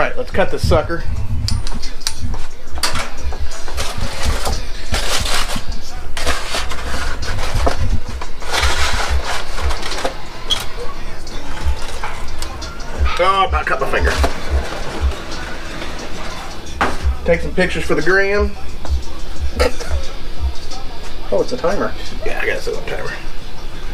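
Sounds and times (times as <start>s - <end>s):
aluminium foil crinkling: 3.8s - 12.6s.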